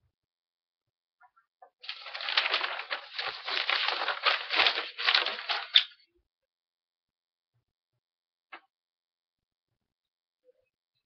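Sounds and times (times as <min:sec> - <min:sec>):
close rustling and brushing: 0:01.9 - 0:05.8.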